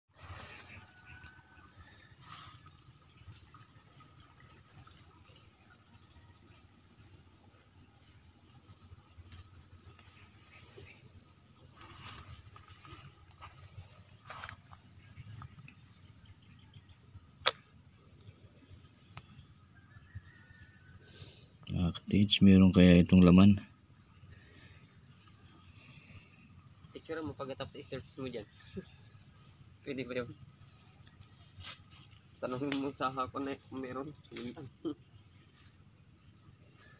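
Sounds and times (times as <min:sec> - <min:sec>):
insect chorus: 0:00.1 - 0:36.9
pulsing insect trill: 0:00.1 - 0:36.9
footsteps on grass: 0:11.7 - 0:14.9.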